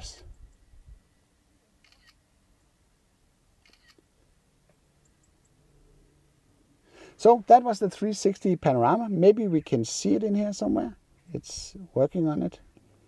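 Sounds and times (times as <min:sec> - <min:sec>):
faint camera shutter clicks: 0:01.8 - 0:02.2, 0:03.6 - 0:04.1.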